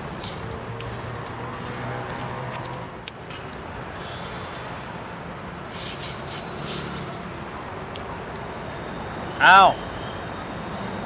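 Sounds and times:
traffic noise: 0:00.0 - 0:11.0
person exclaiming: 0:09.4 - 0:09.8.

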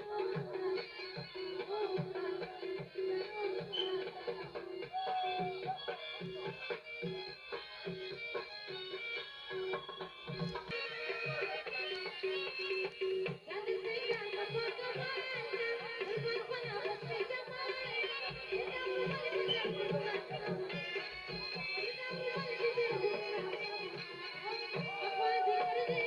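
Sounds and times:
steady drum beat: 0:09.8 - 0:26.0.

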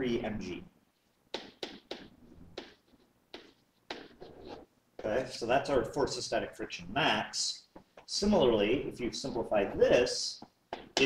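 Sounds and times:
stylus tapping on writing surface: 0:01.3 - 0:04.6, 0:10.4 - 0:11.0.

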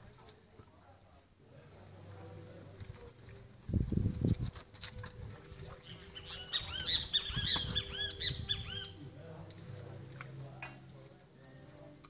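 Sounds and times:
bird chirping: 0:05.8 - 0:09.0.

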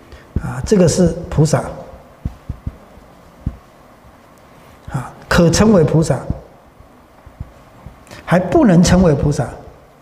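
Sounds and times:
low dull thumps: 0:00.3 - 0:04.3, 0:05.6 - 0:08.1.

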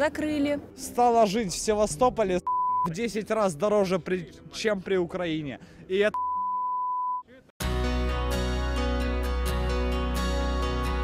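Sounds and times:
background music: 0:00.0 - 0:06.2, 0:07.6 - 0:11.0
censor bleep: 0:02.4 - 0:02.9, 0:06.1 - 0:07.2.

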